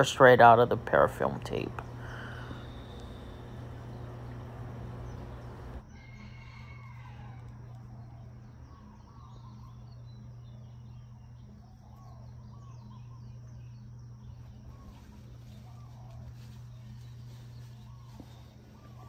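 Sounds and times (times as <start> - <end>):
birds chirping: 0.0 - 6.3, 7.8 - 19.0
steady low hum: 0.0 - 6.4, 7.2 - 19.0.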